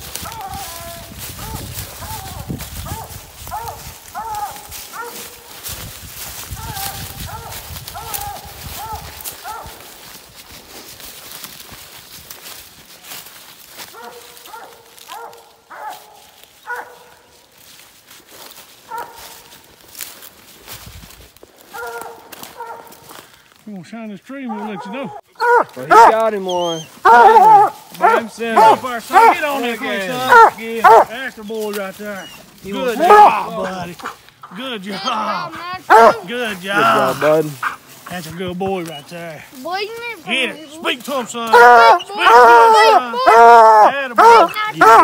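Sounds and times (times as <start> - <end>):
footsteps crunching dry leaves: 0.0 - 45.0
dog barking: 0.2 - 0.8, 1.4 - 5.5, 6.6 - 9.9, 13.9 - 17.3, 18.8 - 19.6, 21.7 - 23.1, 24.5 - 31.2, 32.2 - 34.2, 35.4 - 37.8, 41.5 - 45.0.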